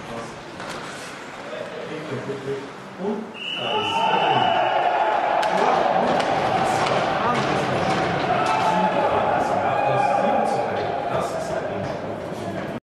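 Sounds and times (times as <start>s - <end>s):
crowd voices echoing: 2.6s - 12.8s
hockey sticks and puck knocking: 5.4s - 9.5s.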